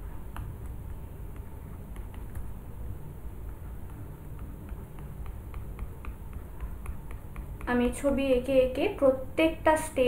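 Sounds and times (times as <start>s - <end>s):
stylus tapping and scratching tablet: 0.0s - 8.4s
room noise: 0.0s - 10.0s.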